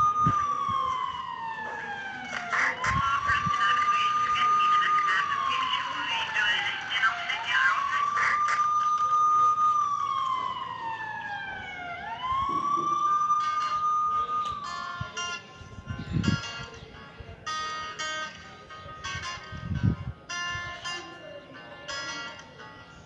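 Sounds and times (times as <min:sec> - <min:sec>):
wailing siren: 0:00.0 - 0:16.3
music with plucked guitar: 0:14.4 - 0:23.0.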